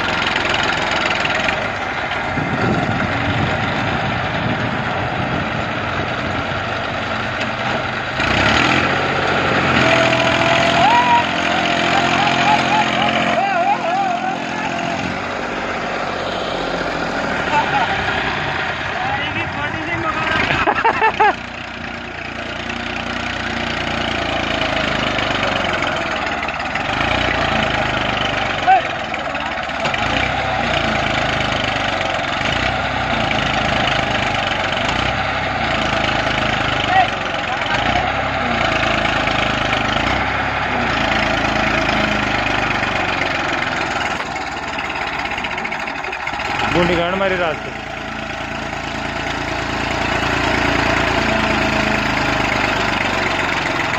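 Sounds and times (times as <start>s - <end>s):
tractor diesel engine running: 0.0s - 53.9s
men's voices: 9.3s - 22.0s, 46.6s - 48.2s.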